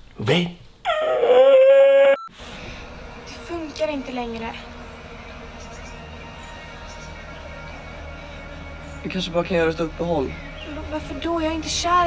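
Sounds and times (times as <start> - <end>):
person mock-crying wail: 0.9 - 2.2.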